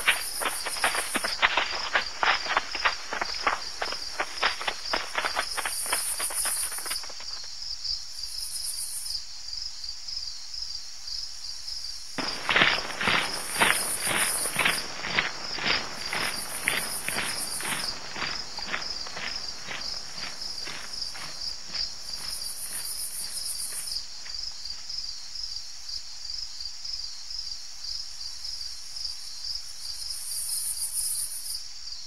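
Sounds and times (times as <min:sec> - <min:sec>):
footsteps: 0:00.0 - 0:07.5, 0:12.2 - 0:24.4
high insect trills: 0:00.0 - 0:32.0
night insects chirring: 0:00.0 - 0:32.0.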